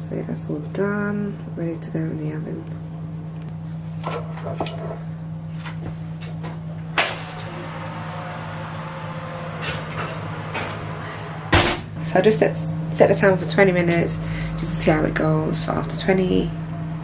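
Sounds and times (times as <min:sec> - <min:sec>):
steady low hum: 0:00.0 - 0:17.0
oven door shutting thump: 0:11.5 - 0:11.9.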